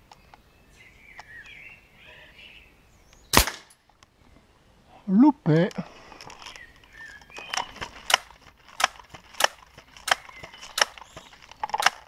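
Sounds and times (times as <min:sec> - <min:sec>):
air rifle shot: 0:03.3 - 0:03.8.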